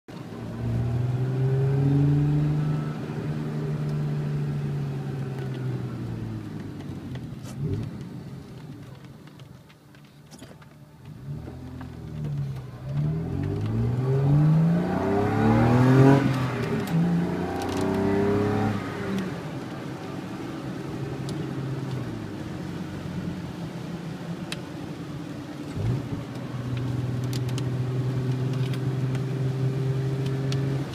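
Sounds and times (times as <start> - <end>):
car engine revving through gears: 0.2 - 8.8, 11.1 - 23.6, 25.6 - 30.9.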